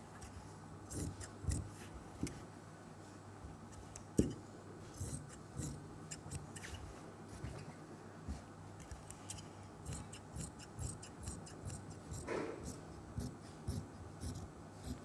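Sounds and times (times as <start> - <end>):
scissors snipping fabric: 5.0 - 6.8, 9.9 - 13.4.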